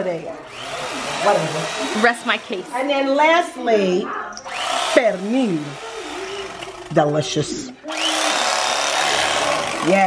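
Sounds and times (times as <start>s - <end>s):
electric carving knife running: 0.5s - 2.7s, 4.4s - 10.0s.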